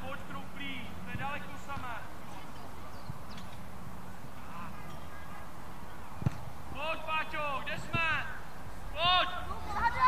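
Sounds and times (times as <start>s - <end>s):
outdoor background noise: 0.0s - 10.0s
children shouting: 9.4s - 10.0s.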